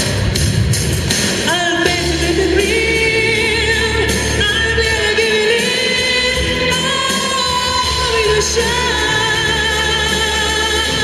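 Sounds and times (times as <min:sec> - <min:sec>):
band accompaniment: 0:00.0 - 0:11.0
woman singing into a microphone: 0:01.4 - 0:11.0.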